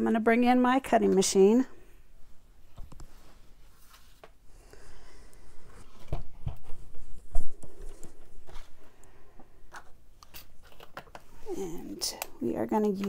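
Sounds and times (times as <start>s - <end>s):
cards rustling on wooden table: 9.7s - 12.1s.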